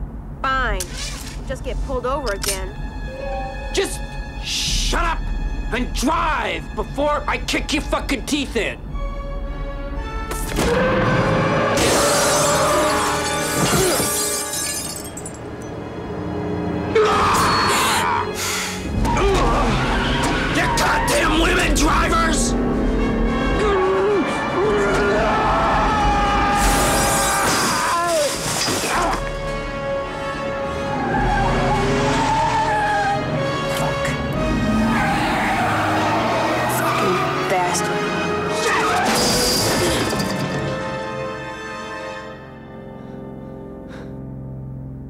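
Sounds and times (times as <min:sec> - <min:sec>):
dramatic film score music: 0:00.0 - 0:14.6, 0:15.4 - 0:45.0
car window glass shattering: 0:11.8 - 0:15.6, 0:26.6 - 0:29.4, 0:38.8 - 0:41.0
tires squealing: 0:16.9 - 0:29.3, 0:30.4 - 0:40.2
car engine driven hard: 0:18.9 - 0:26.3, 0:30.4 - 0:38.6.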